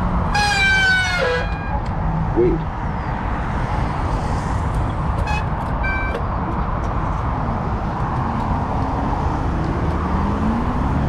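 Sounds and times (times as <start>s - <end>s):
wind rumble on camera: 1.6s - 11.0s.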